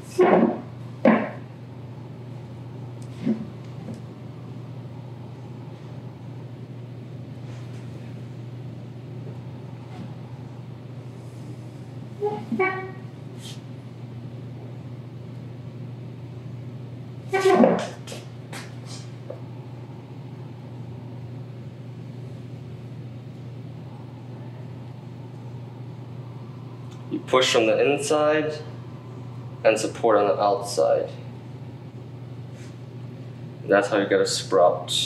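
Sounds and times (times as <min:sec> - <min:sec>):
pottery wheel motor humming: 0:00.0 - 0:35.0.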